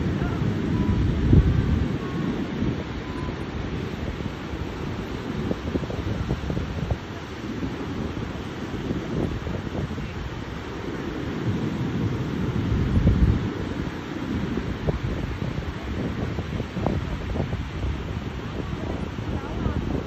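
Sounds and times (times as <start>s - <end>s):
ocean surf breaking: 0.0s - 20.0s
wind buffeting microphone: 0.0s - 20.0s.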